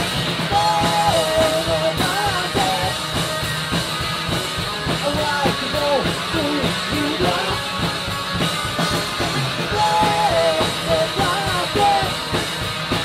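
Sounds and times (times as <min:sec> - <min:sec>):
rock band playing: 0:00.0 - 0:13.0
person singing: 0:00.5 - 0:03.0, 0:05.0 - 0:07.7, 0:09.7 - 0:12.4.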